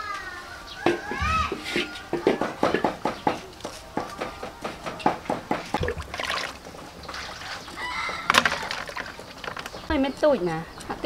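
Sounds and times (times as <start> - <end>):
rooster crowing: 0.2 - 2.7, 7.6 - 9.0.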